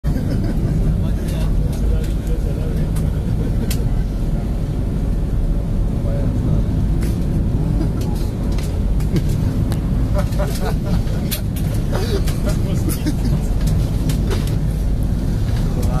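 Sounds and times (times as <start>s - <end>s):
boat engine rumble: 0.0s - 16.0s
person laughing: 0.1s - 1.0s, 10.0s - 13.5s.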